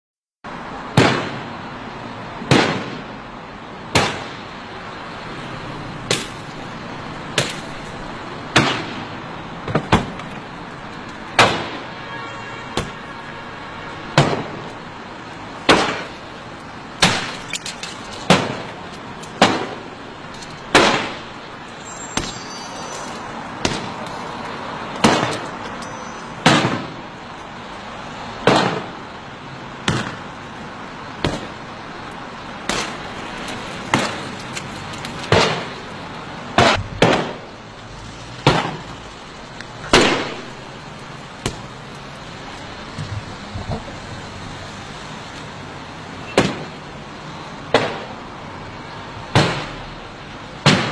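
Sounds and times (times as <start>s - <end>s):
car body and glass smashed: 17.0s - 21.2s, 32.7s - 35.8s.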